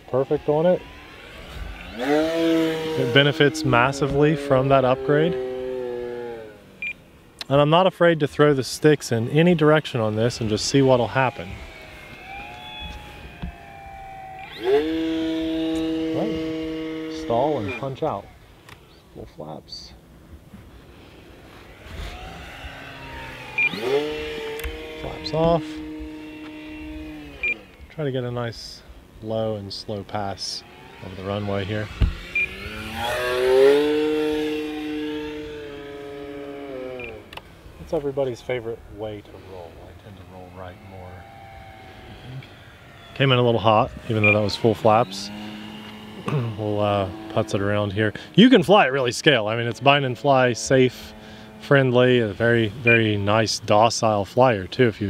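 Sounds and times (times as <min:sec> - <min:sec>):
model plane motor whine: 0:00.0 - 0:07.4, 0:09.0 - 0:19.1, 0:20.0 - 0:55.0.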